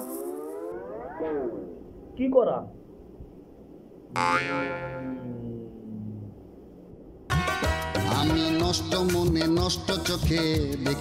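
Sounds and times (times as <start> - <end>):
twangy comedic boing: 4.1 - 5.6.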